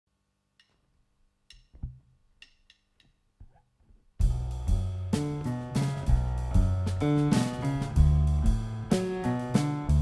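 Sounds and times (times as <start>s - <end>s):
drum kit clicks: 1.5s - 3.6s, 4.2s - 10.0s.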